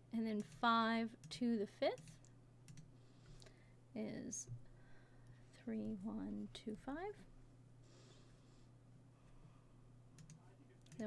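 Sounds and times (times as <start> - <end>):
low steady hum: 0.0 - 11.0
faint keyboard clicks: 10.2 - 11.0.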